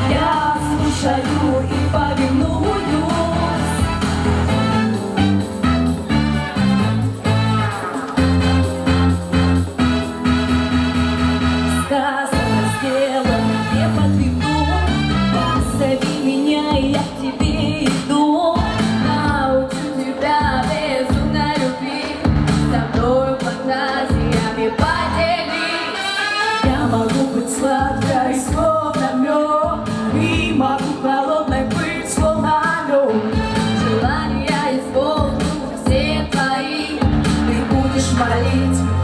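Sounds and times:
women singing in a group: 0.0 - 3.8, 15.9 - 26.1, 26.7 - 33.3, 34.0 - 38.8
pop backing track: 0.0 - 39.0.

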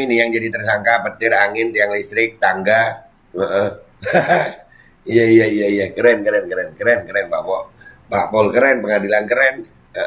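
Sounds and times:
man making wordless vocal sounds: 3.4 - 6.0.

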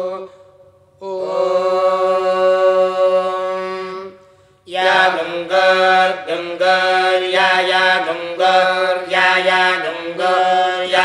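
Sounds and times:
mantra chanting: 0.0 - 11.0.

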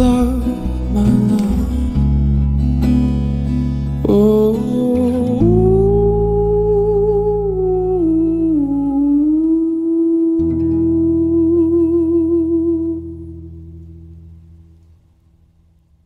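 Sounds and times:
person humming a held note: 4.0 - 13.6.

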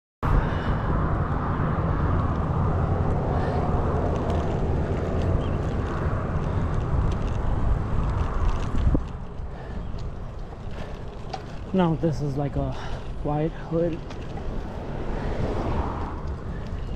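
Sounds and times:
road traffic: 0.2 - 16.9
wind rumbling on microphone: 0.2 - 16.9.

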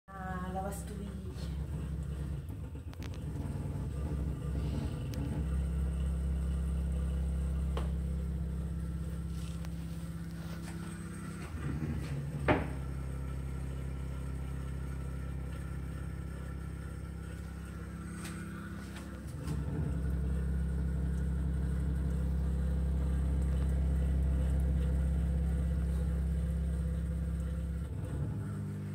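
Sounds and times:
dishwasher humming: 0.1 - 28.9.

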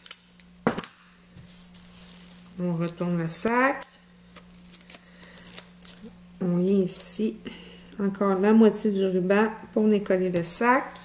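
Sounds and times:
tape crinkling: 0.0 - 6.2
adhesive tape ripping: 3.4 - 6.1.

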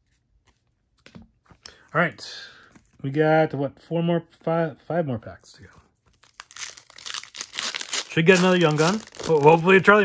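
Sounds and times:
person speaking: 7.9 - 10.0.

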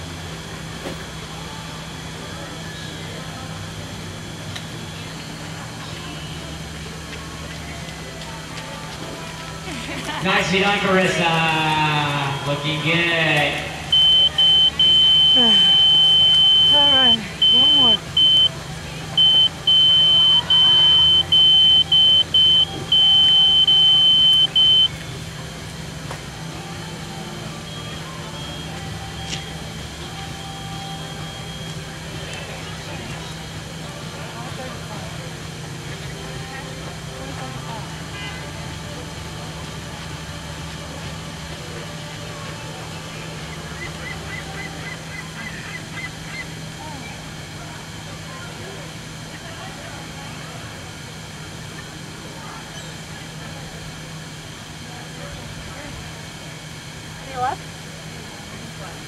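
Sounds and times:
low steady hum: 0.0 - 59.0
high electronic beeping: 13.8 - 18.6, 19.2 - 25.0
faint background voices: 24.7 - 59.0.

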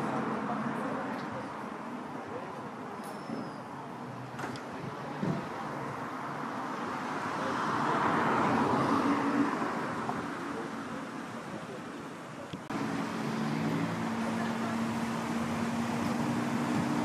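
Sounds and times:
street traffic noise: 0.0 - 17.0.

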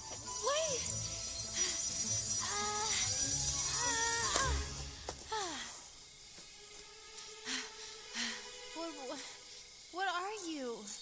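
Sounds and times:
film music: 0.0 - 10.7
loud rushing hiss: 0.0 - 11.0.

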